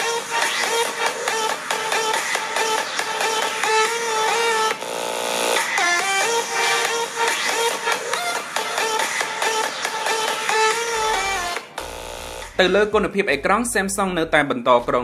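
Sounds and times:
electronic music through phone speaker: 0.0 - 15.0.

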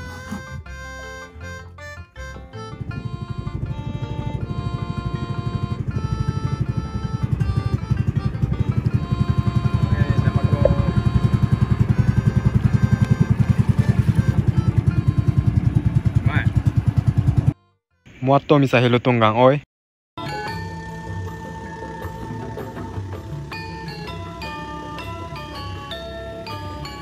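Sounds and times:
background music: 0.0 - 16.5, 20.2 - 27.0
boat engine pulsing: 0.0 - 17.6, 20.2 - 27.0.

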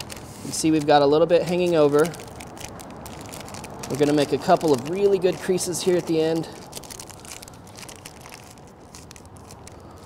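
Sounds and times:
parchment paper crinkling: 0.0 - 10.0.

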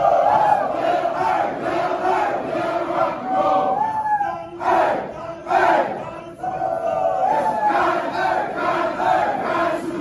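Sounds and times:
soldiers chanting marching cadence: 0.0 - 3.8, 4.6 - 10.0.

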